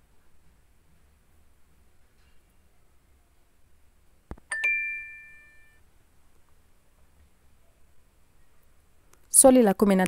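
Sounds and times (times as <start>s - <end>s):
bright two-note chime: 4.5s - 5.8s.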